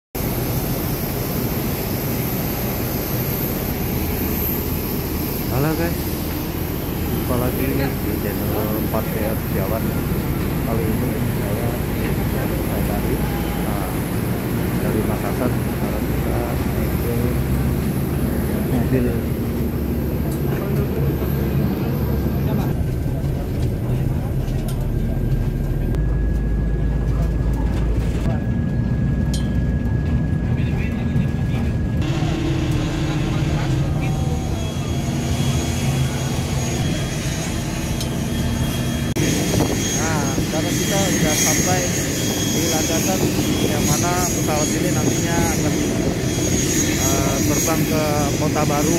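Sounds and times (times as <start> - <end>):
aircraft engines rumbling: 0.2 - 48.9
high engine whine: 0.2 - 48.9
passengers' voices: 5.5 - 29.2, 30.0 - 38.4.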